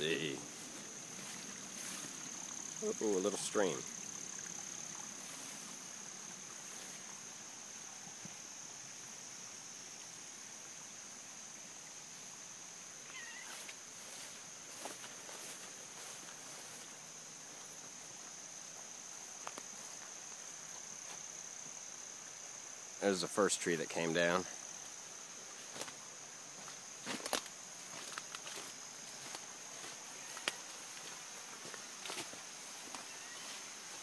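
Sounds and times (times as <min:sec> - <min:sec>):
rustling vegetation and handling: 0:00.0 - 0:03.5
high-pitched insect chorus: 0:00.0 - 0:34.0.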